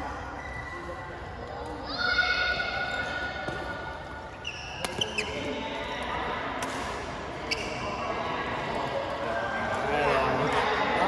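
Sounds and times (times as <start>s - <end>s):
shoes squeaking on floor: 4.3s - 5.6s, 7.4s - 8.0s
rackets striking shuttlecock: 4.8s - 5.4s, 6.5s - 7.1s.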